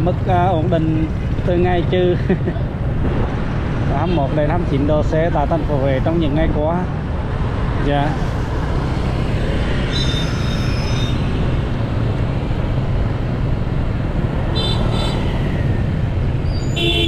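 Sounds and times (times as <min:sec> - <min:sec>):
passing motorbikes and cars: 0:00.0 - 0:17.0.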